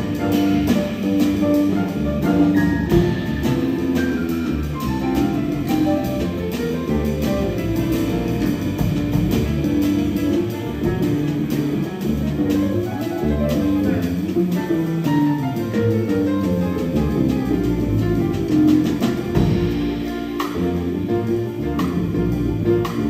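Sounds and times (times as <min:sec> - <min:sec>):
drum kit with cymbals: 0:00.0 - 0:23.0
grand piano: 0:00.0 - 0:23.0
plucked upright double bass: 0:00.0 - 0:23.0.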